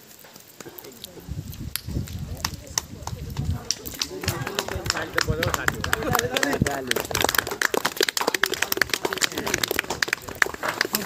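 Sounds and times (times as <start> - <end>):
group hand clapping: 1.8 - 11.0.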